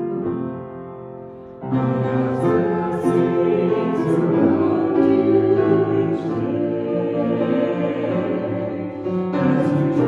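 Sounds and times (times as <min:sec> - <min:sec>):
piano accompaniment: 0:00.0 - 0:10.0
small group singing: 0:01.6 - 0:10.0.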